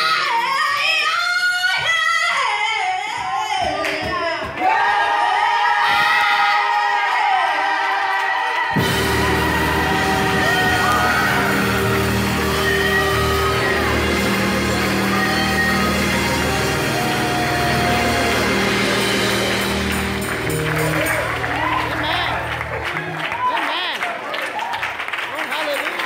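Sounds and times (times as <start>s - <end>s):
choir singing: 8.8s - 21.8s
band playing low held chords: 8.8s - 23.0s.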